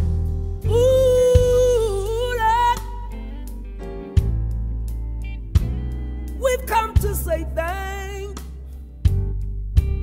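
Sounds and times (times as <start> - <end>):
band playing: 0.0 - 10.0
man singing gospel: 0.6 - 3.3, 6.4 - 8.6.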